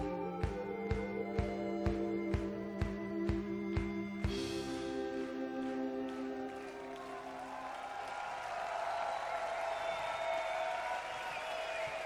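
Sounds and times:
audience applause and cheering: 0:04.8 - 0:12.0
whistles: 0:06.0 - 0:12.0.

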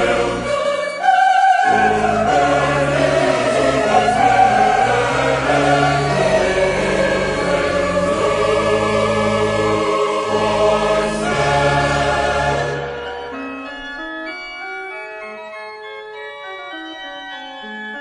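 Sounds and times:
choir singing sacred music: 0:00.0 - 0:13.6.

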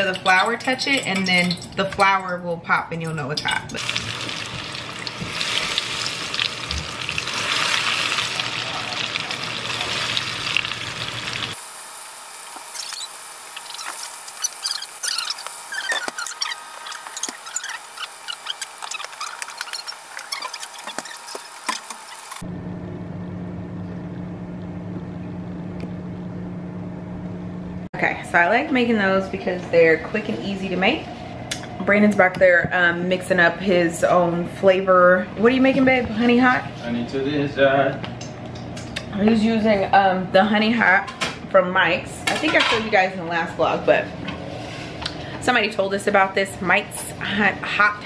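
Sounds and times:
oil crackling and popping: 0:03.7 - 0:22.4
food sizzling in hot oil: 0:03.8 - 0:22.4
steady low hum: 0:06.2 - 0:48.0.

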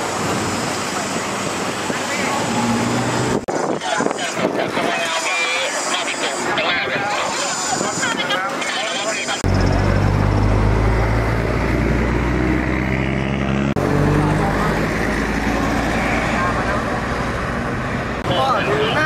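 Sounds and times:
traffic noise: 0:00.0 - 0:19.0
voices: 0:00.8 - 0:02.9, 0:03.6 - 0:10.0, 0:14.0 - 0:19.0
vehicle engine droning: 0:09.3 - 0:19.0.

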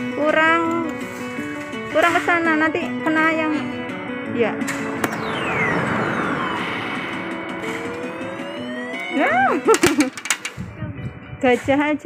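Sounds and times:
steady electronic tones: 0:03.9 - 0:09.7
falling synthesized sweep: 0:04.6 - 0:09.6
slow rising tone: 0:04.6 - 0:09.6
quick electronic bleeps: 0:04.8 - 0:09.6.

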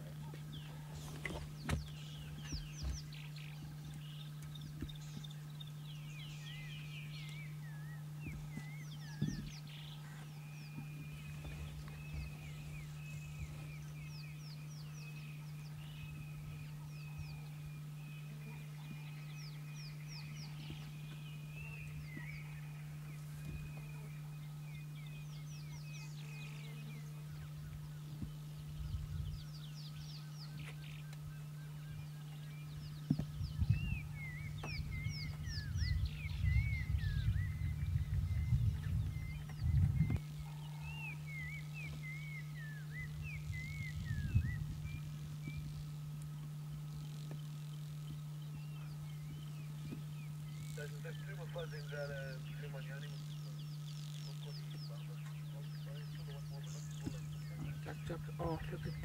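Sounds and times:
birds high chirps: 0:00.0 - 0:59.0
steady low hum: 0:00.0 - 0:59.0
bird wavering call: 0:33.6 - 0:46.2.

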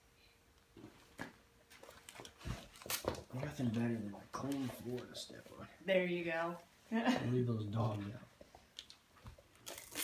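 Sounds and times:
wrapping paper crinkling and tearing: 0:09.6 - 0:10.0.

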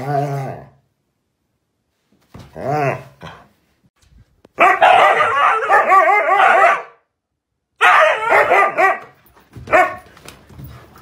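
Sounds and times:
husky barking and yowling: 0:04.6 - 0:07.0, 0:07.8 - 0:10.0.

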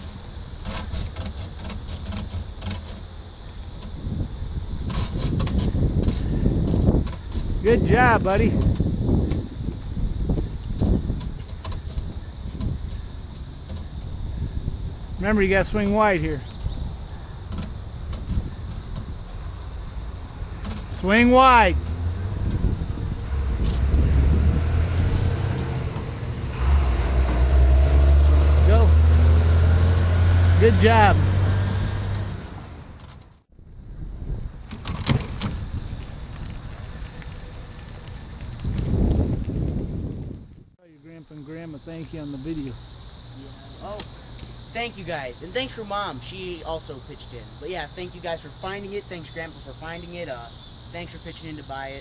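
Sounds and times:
bicycle tyres rolling on concrete: 0:00.0 - 0:27.9, 0:34.3 - 0:40.7
insects chirping: 0:00.0 - 0:52.0
wind on microphone: 0:03.8 - 0:40.8.

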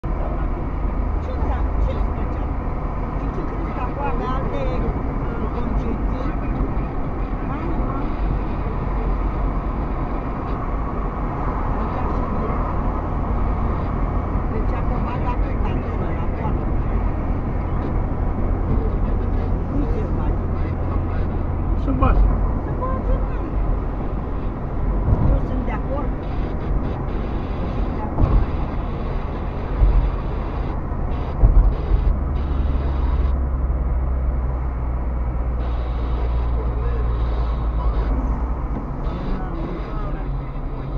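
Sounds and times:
car tyres and engine rumble: 0:00.0 - 0:40.9.

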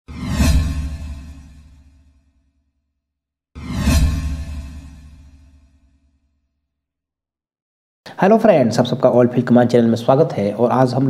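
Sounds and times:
whoosh: 0:00.1 - 0:02.1, 0:03.6 - 0:06.1.

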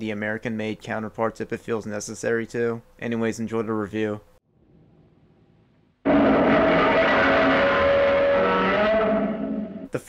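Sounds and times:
screeching monster roar: 0:06.1 - 0:09.9.

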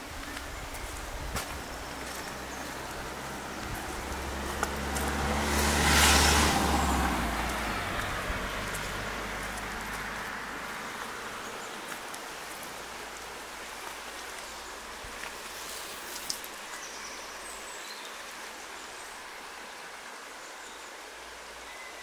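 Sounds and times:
car driving past: 0:02.4 - 0:11.7.

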